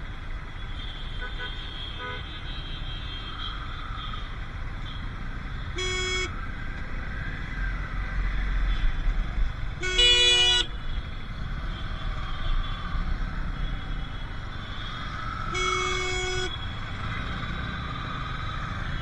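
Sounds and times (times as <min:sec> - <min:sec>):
traffic engine and road noise: 0:00.0 - 0:19.0
vehicle horn honking: 0:01.1 - 0:02.7, 0:05.7 - 0:06.3, 0:09.8 - 0:10.8, 0:15.5 - 0:16.6.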